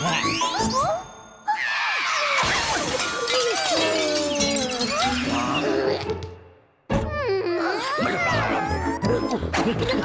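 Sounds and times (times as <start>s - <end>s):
pottery smashing and shattering: 2.2s - 5.8s
music: 4.6s - 10.0s.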